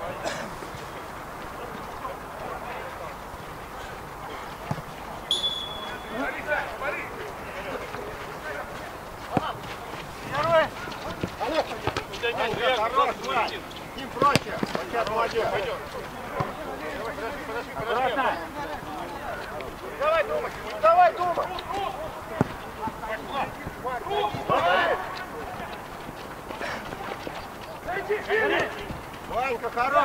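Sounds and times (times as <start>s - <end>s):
ball kicks: 4.6s - 6.4s, 10.4s - 12.7s, 14.1s - 15.5s, 16.3s - 16.6s, 23.6s - 24.7s
whistle blast: 5.3s - 6.4s
players shouting: 5.3s - 8.5s, 9.3s - 30.0s.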